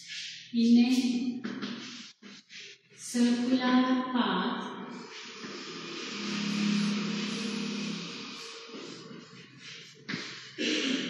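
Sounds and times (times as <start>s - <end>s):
steady hiss: 4.9s - 11.0s
vehicle engine passing by: 5.6s - 9.0s.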